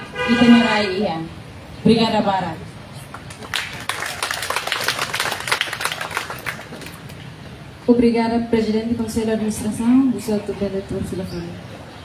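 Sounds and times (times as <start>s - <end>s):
audience applauding: 3.1s - 7.2s.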